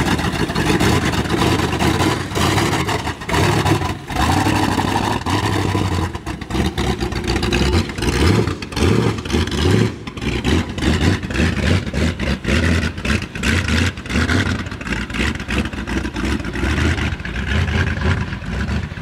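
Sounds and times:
truck engine revving: 0.0s - 19.0s.

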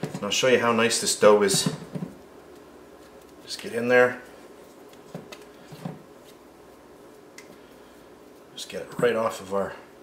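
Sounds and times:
soft squishing of sticky dough: 0.0s - 10.0s.

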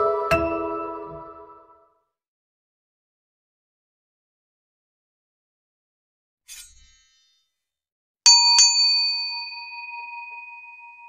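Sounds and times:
bell chime ding: 8.3s - 11.0s.

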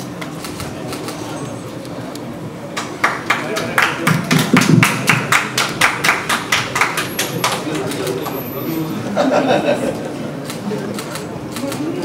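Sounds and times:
hand clapping: 2.8s - 8.2s.

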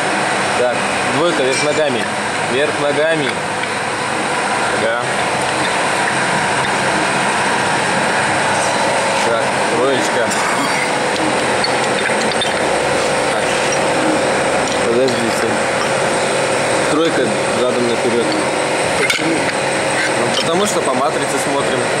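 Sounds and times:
factory machinery hum: 0.0s - 22.0s
faint voices: 4.0s - 22.0s.

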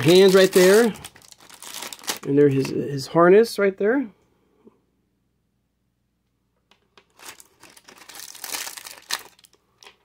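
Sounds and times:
plastic packaging crinkling: 0.0s - 2.8s, 7.0s - 10.0s.

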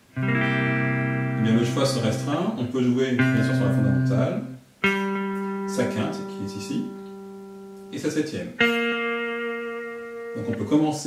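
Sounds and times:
electric guitar notes: 0.0s - 11.0s
person speaking: 1.4s - 4.6s, 5.7s - 7.1s, 7.9s - 8.6s, 10.3s - 11.0s.

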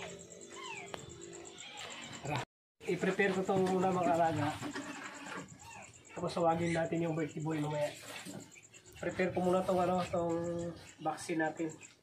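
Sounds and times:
faint animal cries: 0.0s - 2.4s, 3.8s - 7.4s.

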